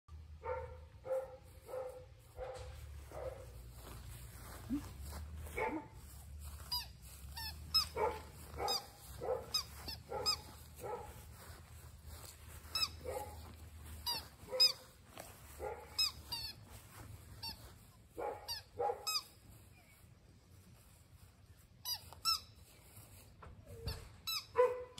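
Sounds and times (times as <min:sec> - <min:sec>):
puppy yipping: 0:06.7 - 0:11.1, 0:12.7 - 0:14.9, 0:18.2 - 0:20.0, 0:23.6 - 0:24.9.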